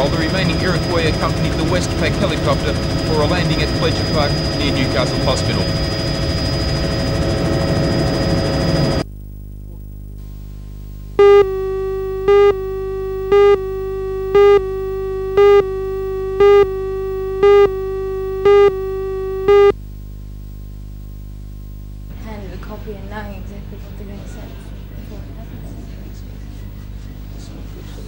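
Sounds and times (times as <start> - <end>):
electronic test tone: 0.0 - 9.0, 11.2 - 19.8
helicopter rotor and turbine: 0.0 - 9.0, 11.2 - 19.7
low hum: 0.0 - 27.2
countdown beeps: 11.2 - 19.7.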